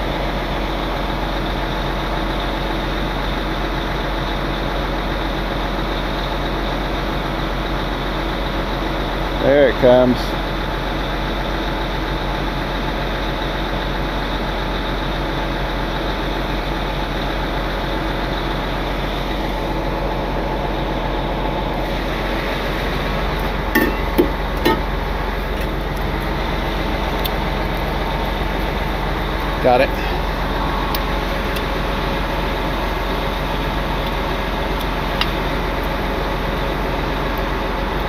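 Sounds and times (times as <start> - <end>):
diesel engine idling: 0.0 - 38.0
propane torch hissing: 21.5 - 38.0.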